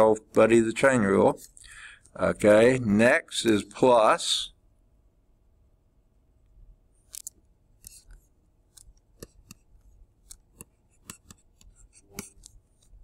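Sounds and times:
stylus tapping on tablet screen: 7.8 - 13.0.

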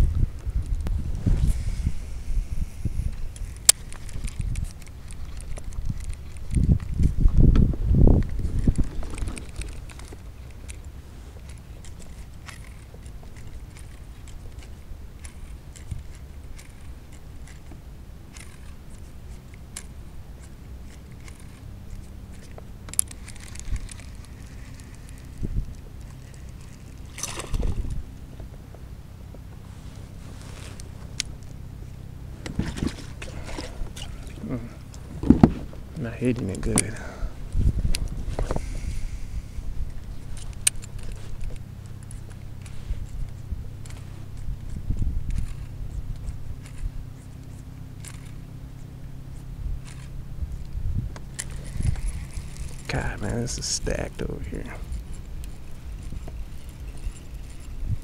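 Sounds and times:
low rumble: 0.0 - 58.0.

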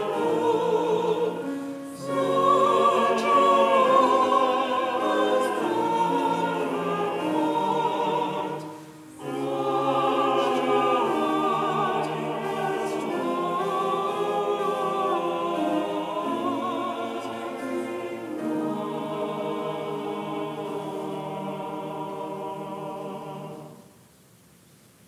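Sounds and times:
church choir singing: 0.0 - 23.9.

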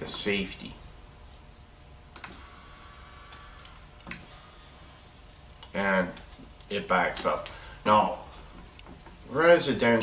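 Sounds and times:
door opener motor whine: 2.0 - 5.8.

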